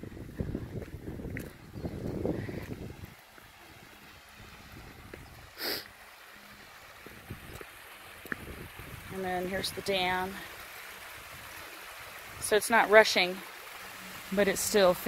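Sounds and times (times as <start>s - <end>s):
wind buffeting microphone: 0.0s - 5.5s, 7.0s - 10.1s
breathy puff: 5.6s - 5.9s.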